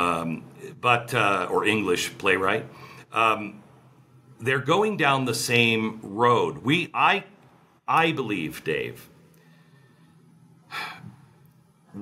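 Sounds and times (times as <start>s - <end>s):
man speaking: 0.0s - 3.7s, 4.4s - 9.2s
man inhaling quickly: 2.7s - 3.1s, 9.3s - 11.3s.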